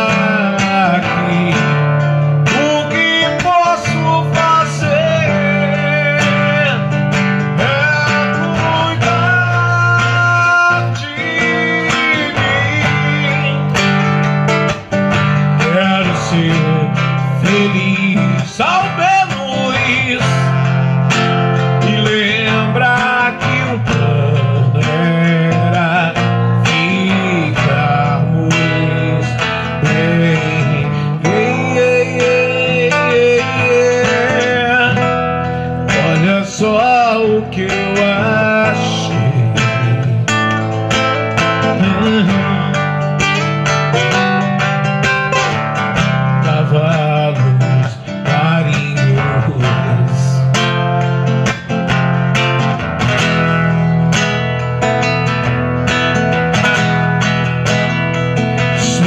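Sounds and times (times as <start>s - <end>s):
man singing: 0.0s - 51.7s, 56.3s - 59.0s
strummed acoustic guitar: 0.0s - 59.0s.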